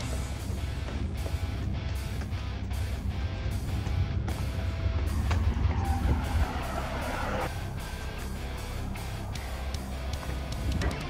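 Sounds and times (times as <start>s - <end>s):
guitar music with heavy bass: 0.0s - 11.0s.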